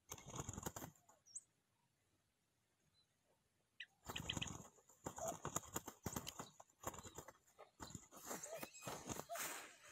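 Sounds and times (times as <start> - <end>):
dove wings flapping: 0.0 - 1.2, 4.0 - 9.8.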